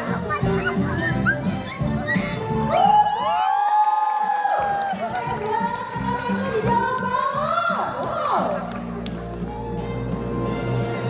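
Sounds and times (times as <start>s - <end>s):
children shouting together: 0.0s - 2.4s.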